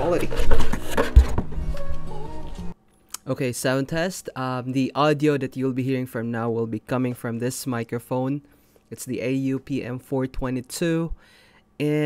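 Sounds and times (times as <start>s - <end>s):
background music: 0.2s - 2.8s.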